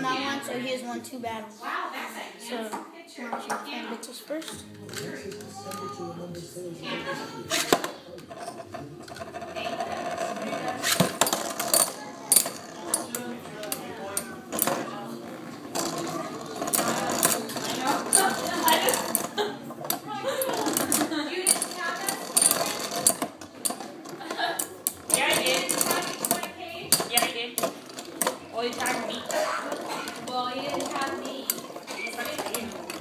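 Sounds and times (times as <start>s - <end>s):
spinning tops whirring: 15.6s - 33.0s.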